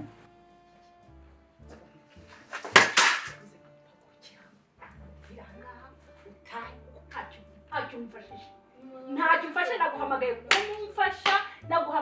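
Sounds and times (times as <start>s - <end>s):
sharp hand claps: 2.7s - 3.4s, 10.5s - 11.5s.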